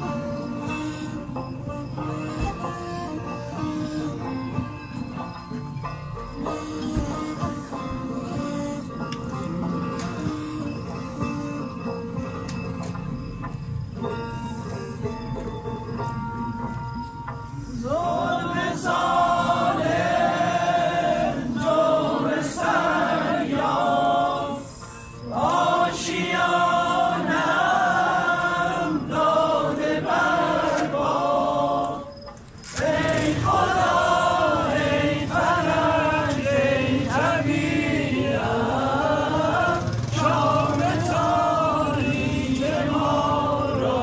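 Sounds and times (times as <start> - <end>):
group singing unaccompanied: 6.3 - 12.7, 17.5 - 44.0.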